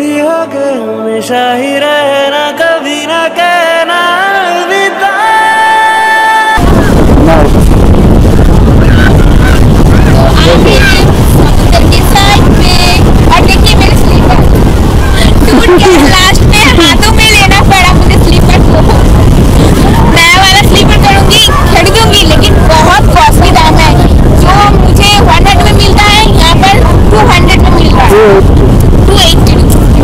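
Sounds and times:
wind buffeting microphone: 0:06.6 - 0:30.0
woman talking: 0:10.2 - 0:14.4, 0:15.1 - 0:19.0, 0:19.9 - 0:28.3, 0:29.1 - 0:30.0.

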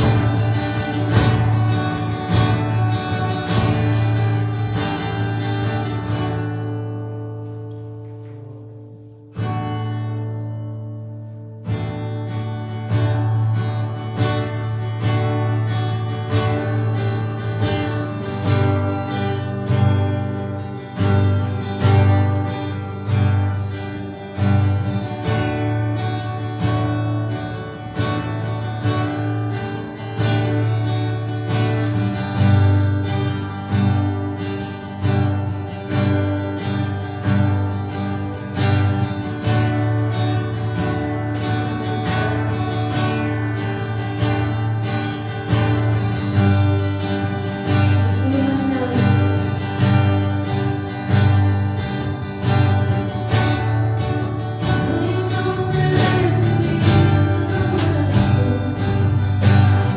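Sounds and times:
electric guitar: 0:00.0 - 0:59.9
strummed acoustic guitar: 0:00.0 - 0:59.9
woman singing: 0:47.8 - 0:49.9, 0:54.6 - 0:59.9.

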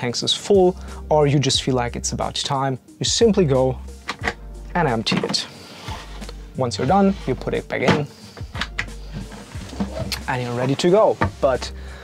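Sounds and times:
wooden box knocks and scrapes: 0:05.0 - 0:11.7.

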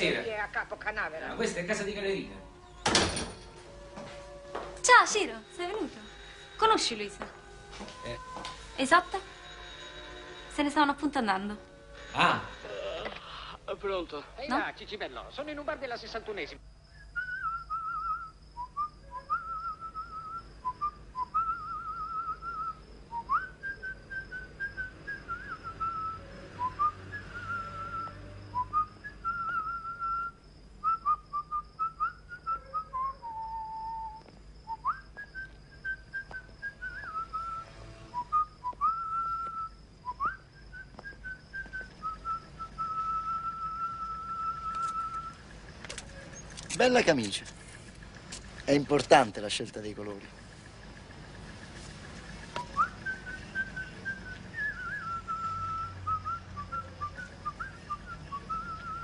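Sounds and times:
person whistling a slow tune: 0:16.9 - 0:45.4, 0:52.6 - 0:59.0.

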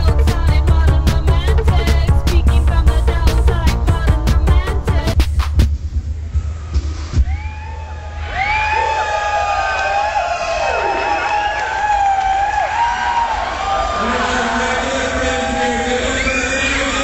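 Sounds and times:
electronic club beat: 0:00.0 - 0:07.4
crowd cheering and shrieking: 0:06.4 - 0:17.0.

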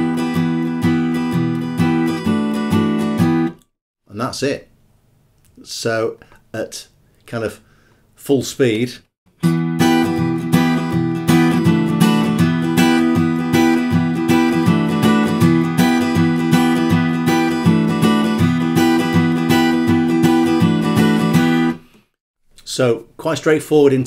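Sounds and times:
acoustic guitar strumming: 0:00.0 - 0:03.6, 0:09.3 - 0:21.8.

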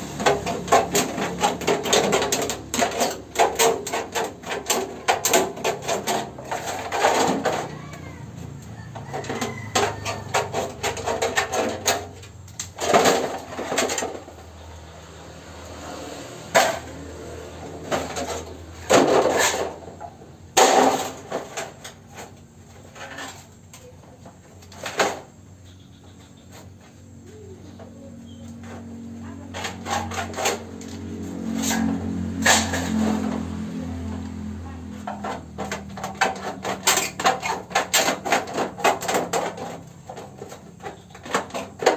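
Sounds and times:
metal sheet rattling: 0:00.0 - 0:14.6, 0:28.6 - 0:41.9.

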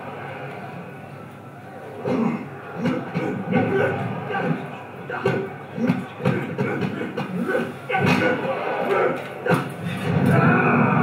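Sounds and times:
voice sounds over speakers: 0:02.0 - 0:11.0.

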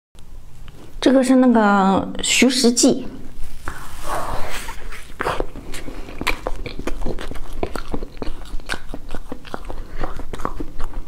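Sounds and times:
biting into cake: 0:04.4 - 0:11.0
chewing with wet mouth clicks: 0:05.1 - 0:11.0.

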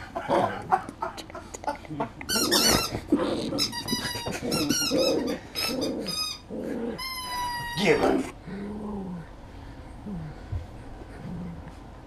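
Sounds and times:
dog play-growling: 0:02.2 - 0:12.0.

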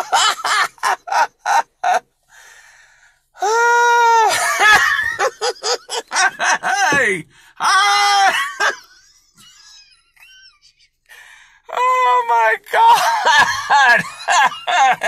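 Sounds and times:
man laughing: 0:00.0 - 0:02.1, 0:03.4 - 0:11.0, 0:11.8 - 0:15.0.

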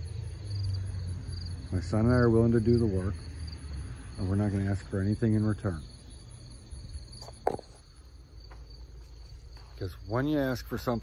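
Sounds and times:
insects trilling: 0:00.0 - 0:11.0.

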